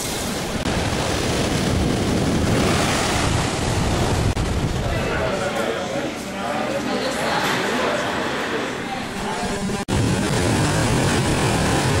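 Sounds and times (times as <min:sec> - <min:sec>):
ocean waves breaking: 0:00.0 - 0:06.0, 0:07.1 - 0:12.0.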